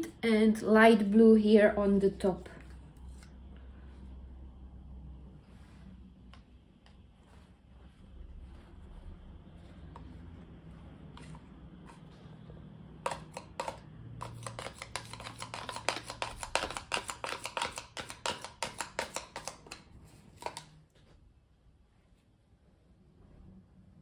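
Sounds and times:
stick tapping inside plastic cup: 0:13.0 - 0:20.8.

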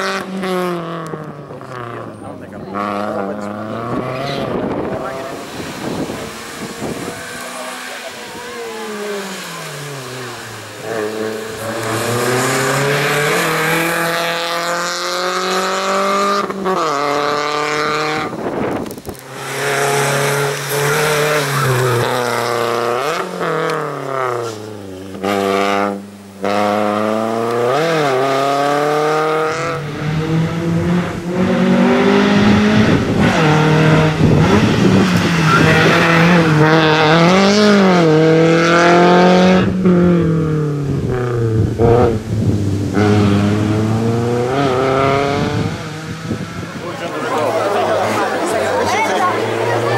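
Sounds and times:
car engine revving: 0:00.0 - 0:49.9.

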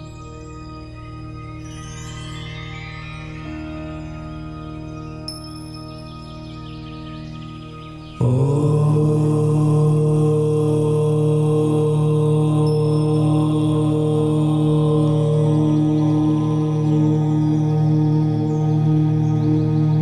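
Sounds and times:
chanted om: 0:00.0 - 0:20.0
soft ambient meditation music: 0:00.0 - 0:20.0.

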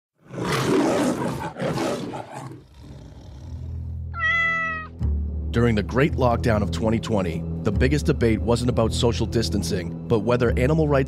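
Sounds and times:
big cat roaring: 0:00.2 - 0:04.4.

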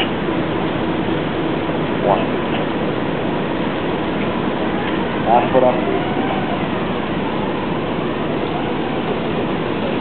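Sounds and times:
boat engines rumbling: 0:00.0 - 0:10.0.

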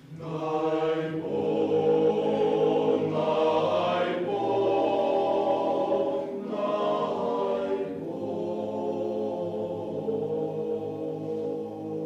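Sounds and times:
male choir singing a cappella: 0:00.0 - 0:12.0.

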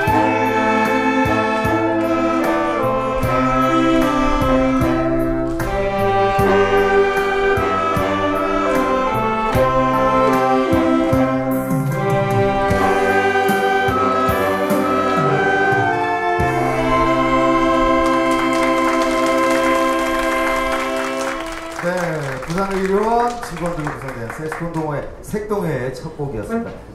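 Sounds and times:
saxophone ensemble playing: 0:00.0 - 0:22.7
ticking beat: 0:00.0 - 0:23.7.

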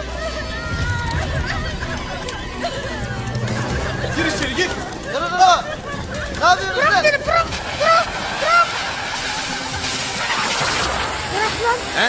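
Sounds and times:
flames burning with rushing hiss: 0:03.7 - 0:12.0
shouted voices: 0:06.4 - 0:09.4.

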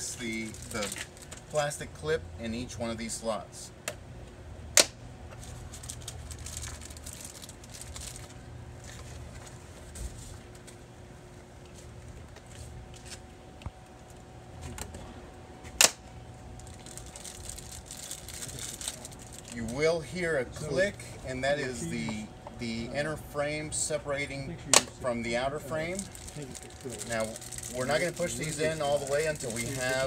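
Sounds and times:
low background rumble: 0:00.0 - 0:30.0.

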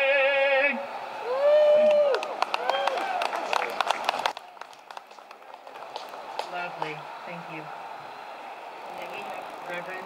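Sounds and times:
small crowd applauding: 0:01.0 - 0:10.0.

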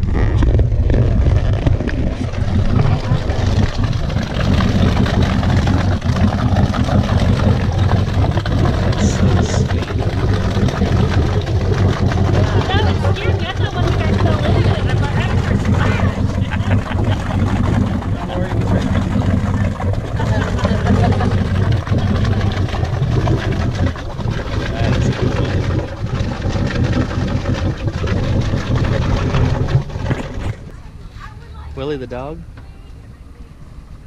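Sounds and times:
boat engine idling: 0:00.0 - 0:34.0.

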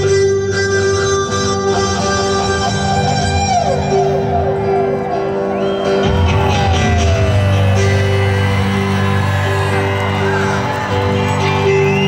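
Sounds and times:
live band with electric guitar: 0:00.0 - 0:12.0
crowd whooping and shouting: 0:02.0 - 0:12.0.

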